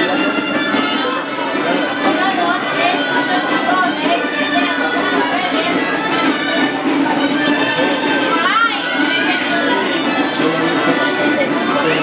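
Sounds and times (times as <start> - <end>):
crowd voices: 0.0 - 12.0
music playing: 0.0 - 12.0.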